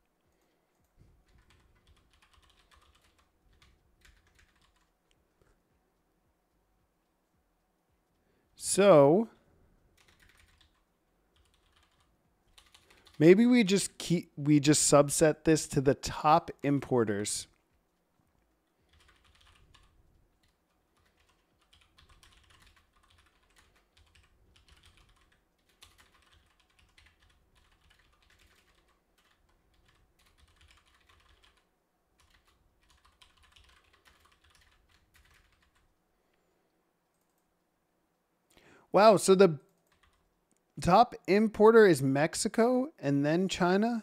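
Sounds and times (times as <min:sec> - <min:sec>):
typing on computer keyboard: 0:00.3 - 0:04.9, 0:10.0 - 0:13.2, 0:18.7 - 0:35.9, 0:39.7 - 0:40.3.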